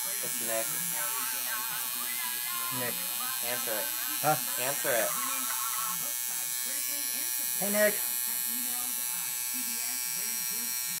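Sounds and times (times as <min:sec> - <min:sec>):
tattoo machine buzzing: 0:00.0 - 0:11.0.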